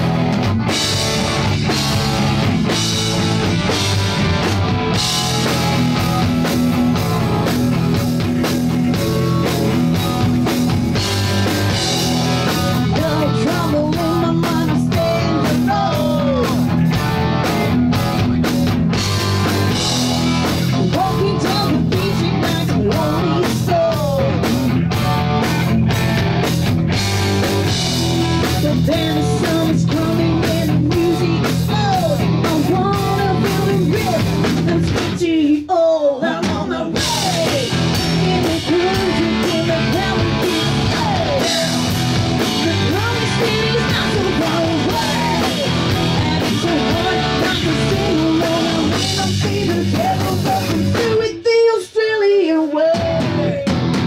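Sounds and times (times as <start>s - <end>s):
rock band playing loudly: 0.0s - 35.6s, 36.2s - 54.0s
woman singing: 12.8s - 16.6s, 20.7s - 24.4s, 28.4s - 53.6s.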